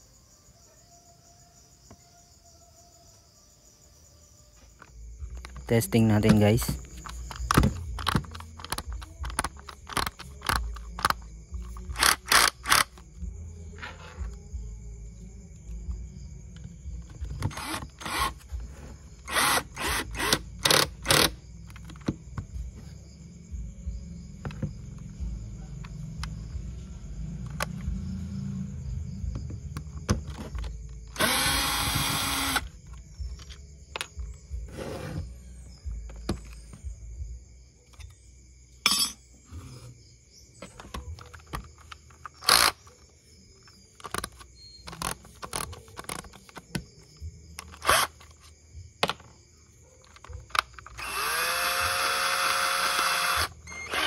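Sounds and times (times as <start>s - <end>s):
handling clicks and knocks: 5.3s - 11.9s
cordless drill driving screws: 17.5s - 18.4s, 19.3s - 21.3s, 31.2s - 32.6s, 47.8s - 48.1s, 51.0s - 54.0s.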